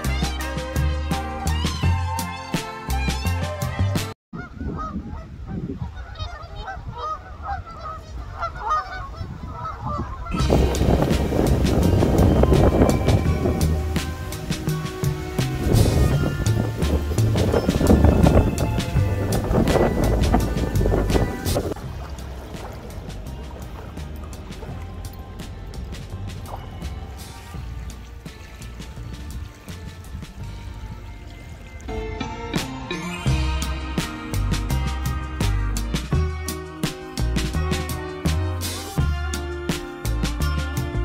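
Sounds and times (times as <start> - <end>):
choppy water: 0.0 - 41.0
wind noise on microphone: 4.3 - 31.9
geese honking: 5.9 - 22.1.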